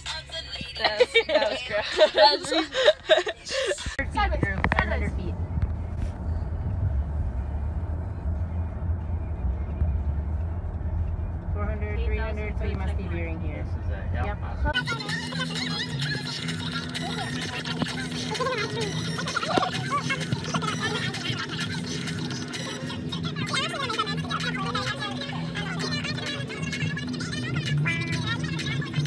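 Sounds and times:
car cabin road rumble: 0.0 - 29.0
steady low hum: 0.0 - 29.0.

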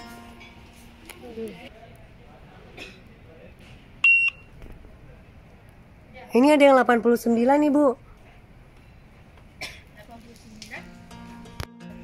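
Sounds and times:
barcode scanner high beep: 4.0 - 4.5.

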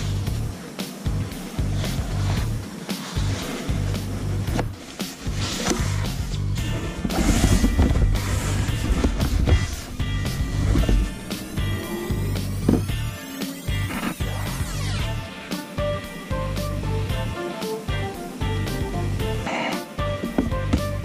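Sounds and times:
music with deep bass and beat: 0.0 - 21.0.

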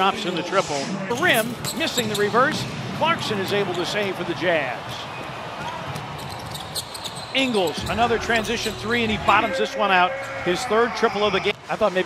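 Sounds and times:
arena background noise: 0.0 - 12.0.

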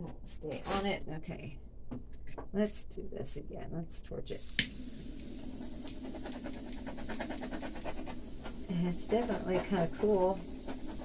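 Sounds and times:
faint high whine: 4.3 - 11.0
torch flame hissing: 4.4 - 11.0.

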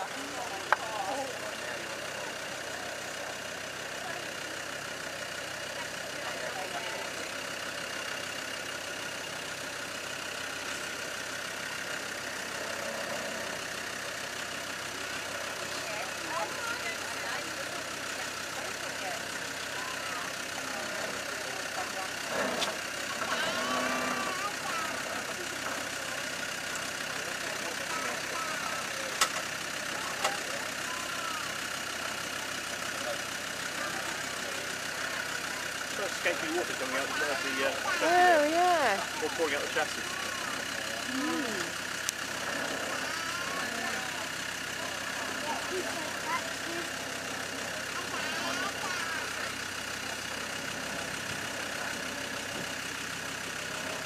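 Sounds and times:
diesel engine idling: 0.0 - 54.0.

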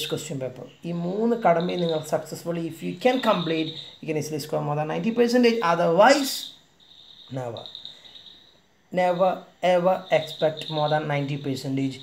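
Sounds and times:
cricket trilling: 0.0 - 12.0.

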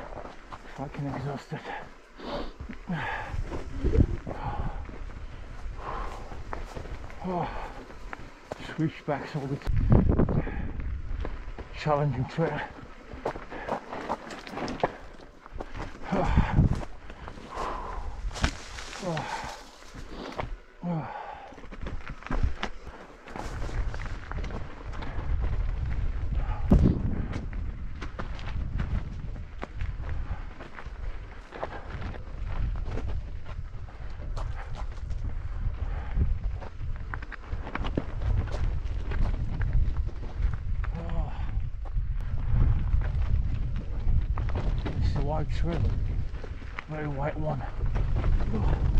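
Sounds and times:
wind on microphone: 3.0 - 7.2, 9.6 - 11.7, 15.6 - 19.4, 23.4 - 48.9
bike rattling over rocks: 9.8 - 20.6.

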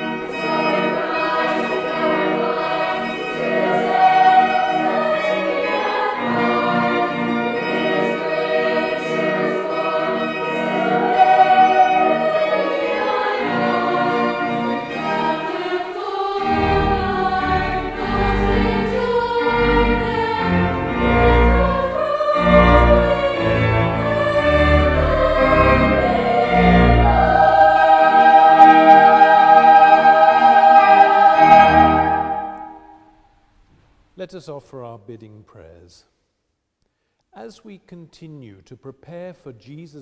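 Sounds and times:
children's choir singing: 0.0 - 33.2.

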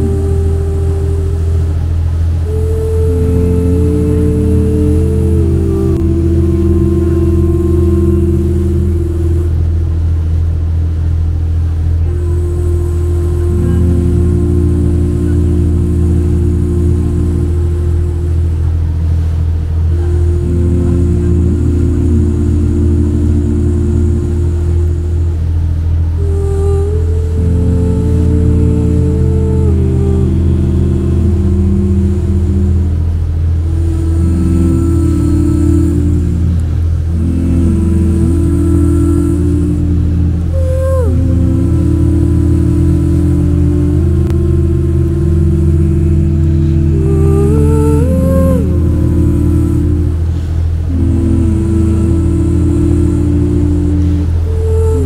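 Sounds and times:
synth chord music: 0.0 - 54.9
boat engine droning: 0.0 - 55.0.

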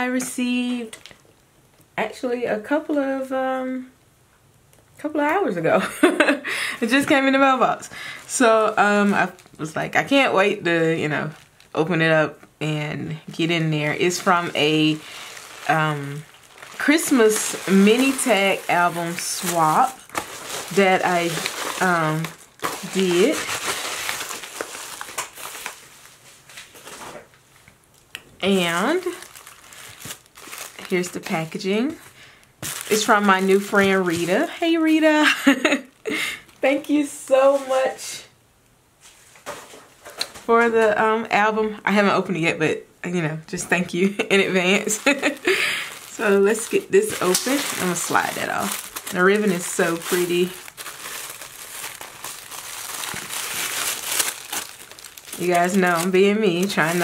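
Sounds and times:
padded envelope crinkling: 13.8 - 27.2, 28.6 - 35.0, 44.6 - 57.0.

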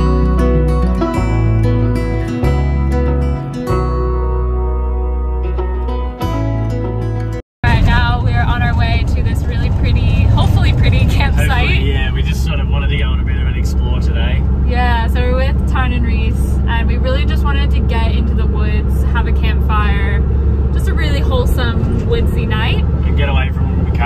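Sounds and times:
engine and road rumble: 0.0 - 24.0
people talking: 7.6 - 20.2, 20.8 - 24.0.

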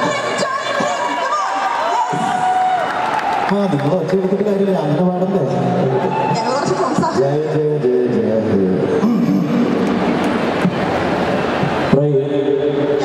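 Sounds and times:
man speaking over pa system: 7.1 - 9.8, 11.9 - 13.0.

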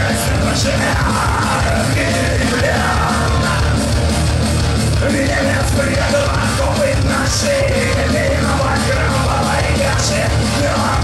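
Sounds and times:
person yelling lead vocal: 0.0 - 3.9, 5.0 - 11.0
bass guitar: 0.0 - 11.0
drums: 0.0 - 11.0
electric guitar: 0.0 - 11.0.

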